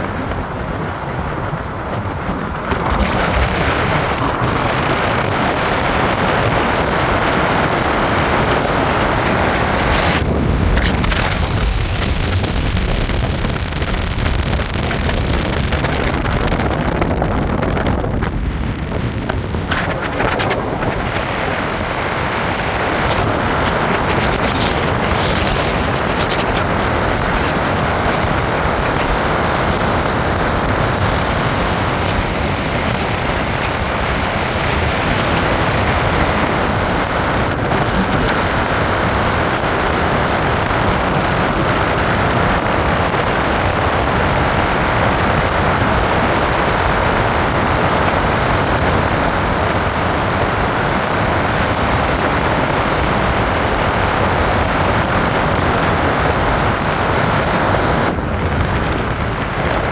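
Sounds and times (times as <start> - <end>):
tyre noise at speed: 0.0 - 44.4
wind rushing: 0.0 - 59.9.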